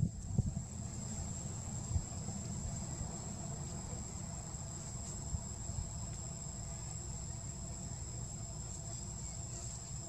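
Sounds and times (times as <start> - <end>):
insects trilling: 0.0 - 10.0.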